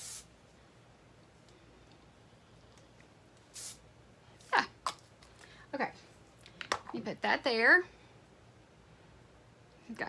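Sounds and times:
aerosol spray hissing: 0:00.0 - 0:00.3, 0:03.5 - 0:03.8.

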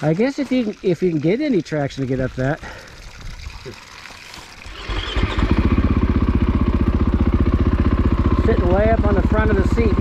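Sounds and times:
dirt bike engine idling: 0:04.7 - 0:10.0.

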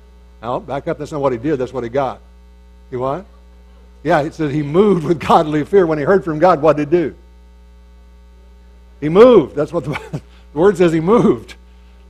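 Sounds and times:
faint buzz of thin tones: 0:00.0 - 0:05.9, 0:07.0 - 0:12.0
electrical mains hum: 0:00.0 - 0:12.0.

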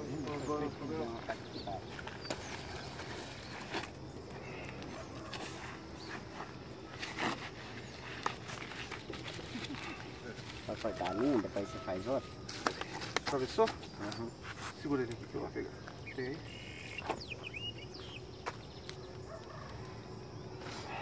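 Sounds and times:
outdoor background noise: 0:00.0 - 0:21.0.

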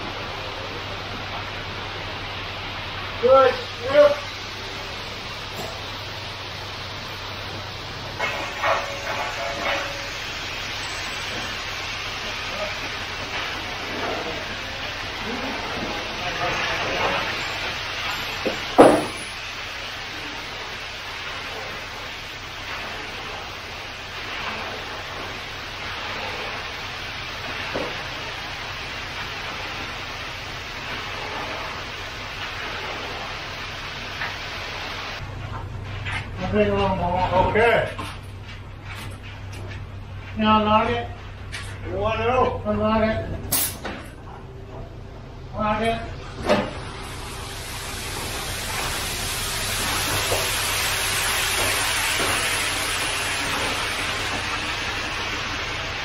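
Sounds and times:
wet concrete pouring and spreading: 0:00.0 - 0:56.0.

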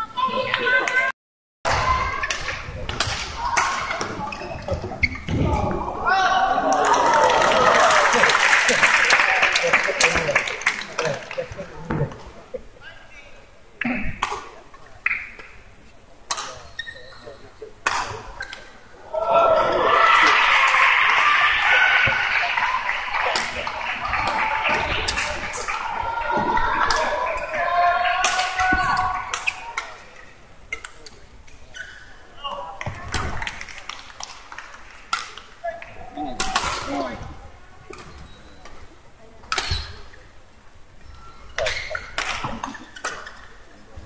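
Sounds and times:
spectators' voices: 0:00.0 - 0:01.1, 0:01.7 - 0:44.0
rackets hitting shuttlecock: 0:02.2 - 0:05.5, 0:17.8 - 0:18.7, 0:35.1 - 0:35.8, 0:36.4 - 0:37.0, 0:39.4 - 0:40.0, 0:41.6 - 0:43.4
racket hitting shuttlecock: 0:17.8 - 0:18.6.

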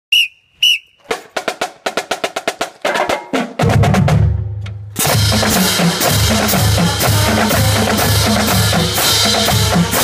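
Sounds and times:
shrill whistle blasts: 0:00.1 - 0:01.1.

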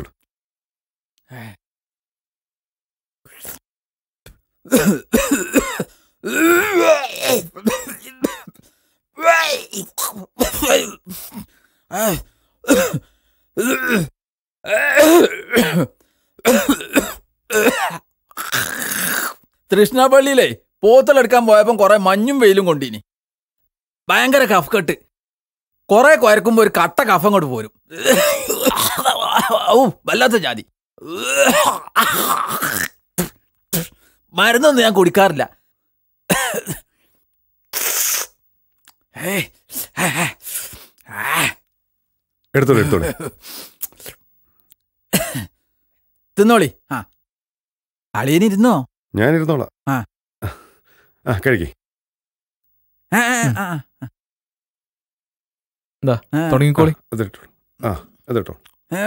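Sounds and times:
man coughing and groaning: 0:04.7 - 0:19.4, 0:27.9 - 0:30.4, 0:31.0 - 0:34.1, 0:36.3 - 0:37.0, 0:39.1 - 0:41.6, 0:42.6 - 0:44.2, 0:45.1 - 0:45.6, 0:46.9 - 0:47.2, 0:49.9 - 0:50.8, 0:53.1 - 0:54.2, 0:57.8 - 0:58.2.

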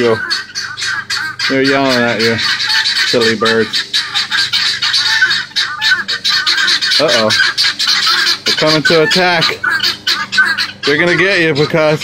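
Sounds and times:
guineafowl alarm calls: 0:00.0 - 0:12.0.

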